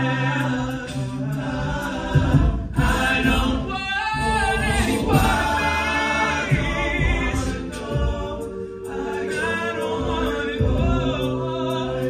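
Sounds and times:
male a cappella group singing: 0.0s - 12.0s.

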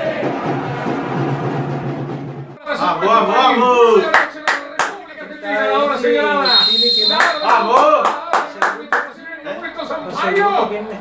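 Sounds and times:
person clapping: 4.1s - 5.0s, 7.2s - 9.1s
referee whistle blast: 6.4s - 7.8s.

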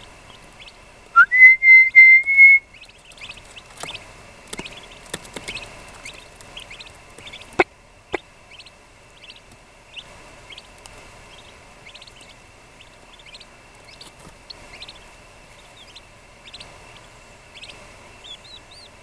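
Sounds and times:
turkey poults peeping: 0.0s - 0.9s, 2.7s - 19.0s
short whistled notes: 1.2s - 2.7s.

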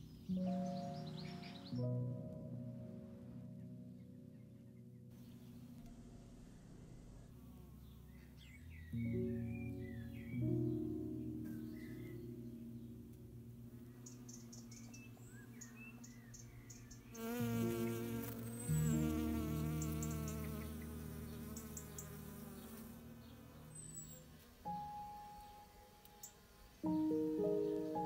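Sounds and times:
ambient music low notes: 0.0s - 28.0s
bee buzzing: 16.5s - 24.9s.

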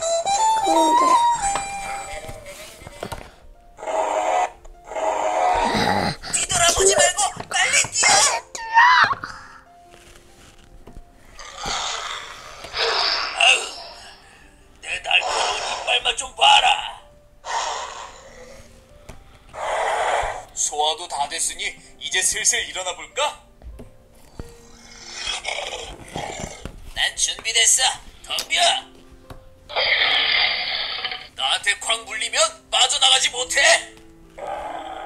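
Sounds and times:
breathy dinosaur sound effect: 11.4s - 14.3s, 15.2s - 15.9s, 17.4s - 18.7s, 19.5s - 20.5s
dinosaur roar from small speaker: 19.6s - 20.5s.

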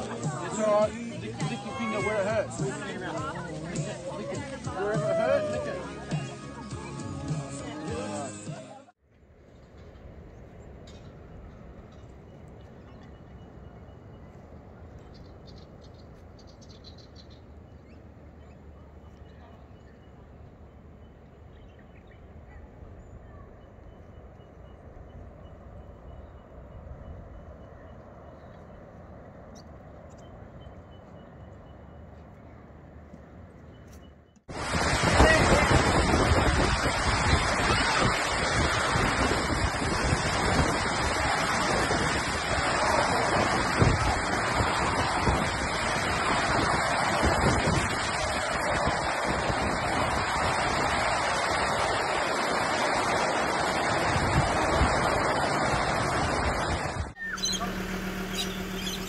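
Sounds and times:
quiet outdoor ambience: 9.0s - 34.5s
choppy lake water: 34.4s - 59.0s
storm wind gusting on microphone: 34.5s - 57.5s.

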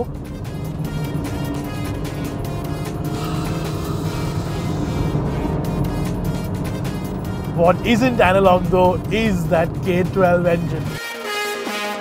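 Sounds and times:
car engine running: 0.0s - 11.0s
background music: 0.0s - 12.0s.

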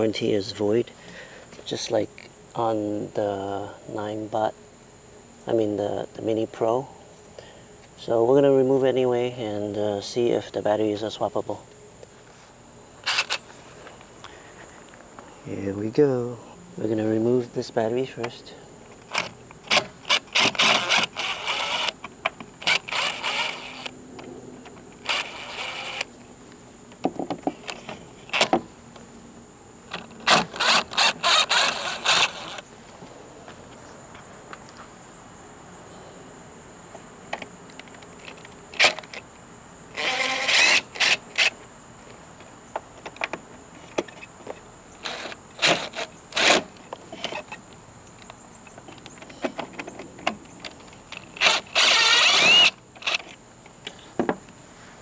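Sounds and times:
cordless impact driver running: 19.7s - 22.0s, 22.6s - 23.9s, 25.0s - 26.1s, 30.2s - 32.6s, 40.0s - 41.5s, 51.4s - 53.2s
sharp clicks from bit and screws: 51.1s - 53.4s.

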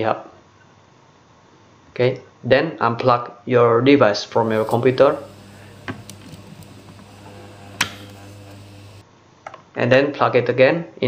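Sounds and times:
steady low hum: 4.3s - 9.0s
usb plug pulled out click: 4.4s - 9.0s.

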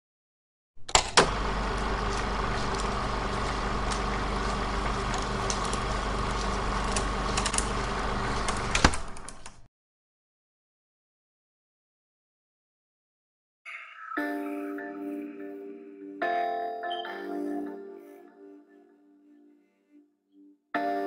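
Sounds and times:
mechanical hum with low drone: 0.8s - 9.7s.

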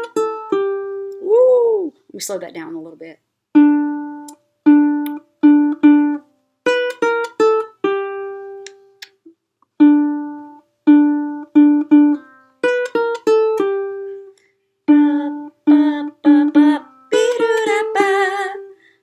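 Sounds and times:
ukulele notes picked: 0.0s - 1.4s, 3.5s - 18.8s.

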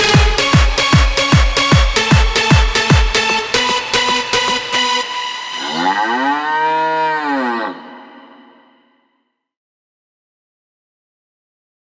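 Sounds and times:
cow mooing: 5.6s - 8.8s.

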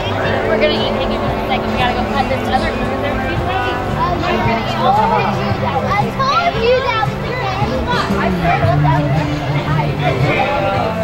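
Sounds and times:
background music: 0.0s - 11.0s
children calling out: 0.0s - 11.0s
crowd chatter: 0.0s - 11.0s.

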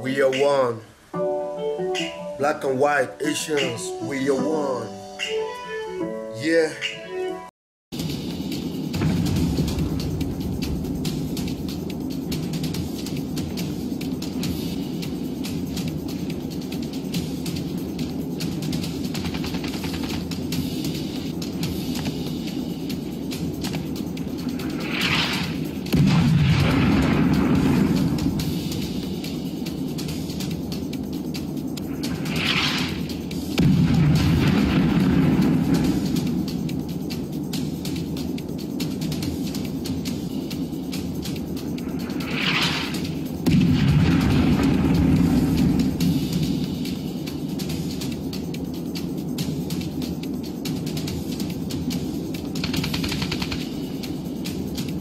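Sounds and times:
background music: 0.0s - 55.0s
explosion blast with low rumble: 8.9s - 11.5s, 25.9s - 28.6s, 32.0s - 36.5s, 43.4s - 46.6s
machine-gun fire: 19.1s - 20.6s, 24.9s - 28.4s, 32.2s - 36.3s, 52.6s - 54.0s.

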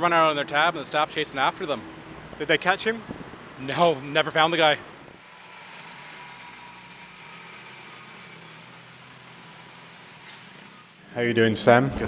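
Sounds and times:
traffic hum and hiss: 0.0s - 11.2s.

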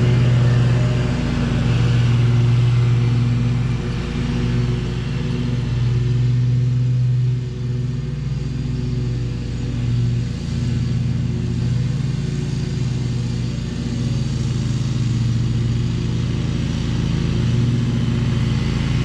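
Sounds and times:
stand-on mower running: 0.0s - 19.0s.

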